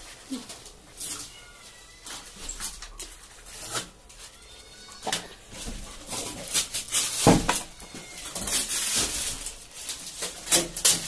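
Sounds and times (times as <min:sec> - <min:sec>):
plastic wrap crinkling: 0:00.0 - 0:11.0.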